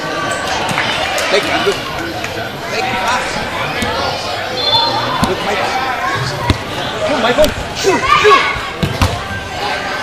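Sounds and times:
voices and hubbub indoors: 0:00.0 - 0:10.0
soccer ball kick thump: 0:05.2 - 0:05.4, 0:06.4 - 0:06.7, 0:08.8 - 0:09.2.

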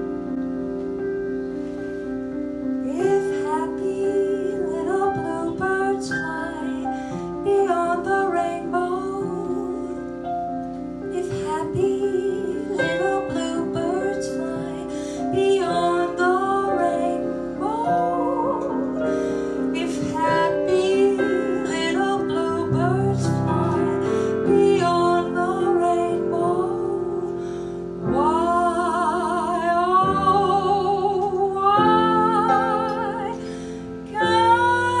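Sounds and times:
piano accompaniment: 0:00.0 - 0:35.0
woman singing into a microphone: 0:02.8 - 0:10.4, 0:11.0 - 0:35.0.

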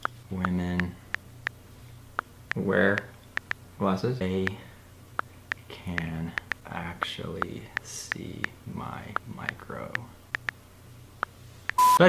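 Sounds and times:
smartphone typing clicks: 0:05.2 - 0:06.6
censor bleep: 0:11.8 - 0:12.0.

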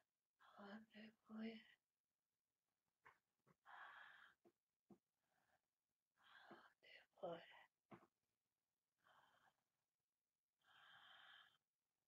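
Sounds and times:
soft breathing: 0:03.5 - 0:04.6, 0:06.2 - 0:07.7, 0:10.6 - 0:11.7.

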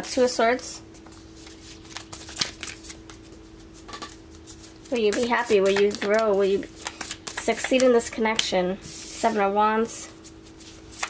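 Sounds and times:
cards shuffling: 0:01.0 - 0:09.4, 0:10.2 - 0:11.0.

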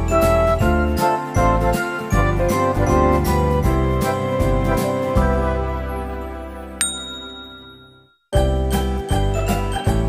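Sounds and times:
jingly background music: 0:00.0 - 0:04.4, 0:06.6 - 0:10.0
bright chime ding: 0:06.8 - 0:08.2.

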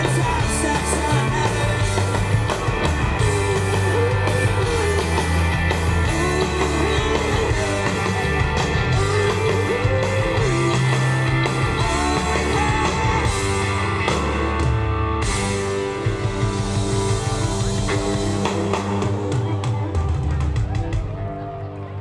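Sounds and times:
drum kit: 0:00.0 - 0:21.6
bass guitar: 0:00.0 - 0:22.0
electric guitars: 0:00.0 - 0:22.0.

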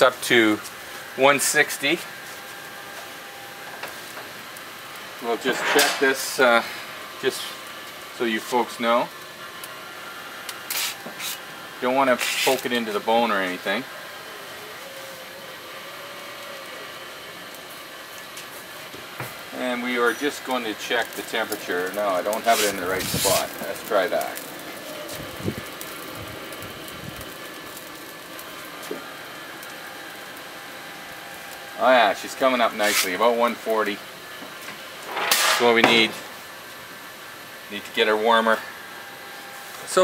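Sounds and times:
barbecue grill hissing and humming: 0:00.0 - 0:40.0
aluminium foil crinkling: 0:19.5 - 0:34.0.

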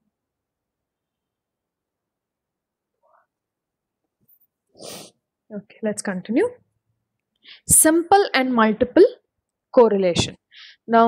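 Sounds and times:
sharp intake of breath: 0:04.8 - 0:05.2.

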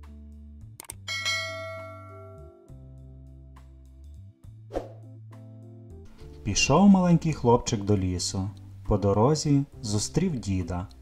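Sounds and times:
soft background music: 0:00.0 - 0:11.0
bright bell chime: 0:01.1 - 0:02.6.

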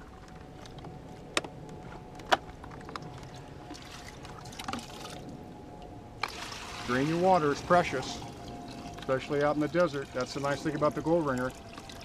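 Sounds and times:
water sloshing and dripping: 0:02.5 - 0:12.0.

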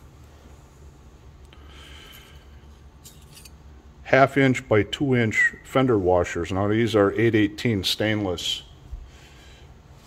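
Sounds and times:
low steady hum: 0:00.0 - 0:10.0
metal washers clinking: 0:03.0 - 0:03.7.

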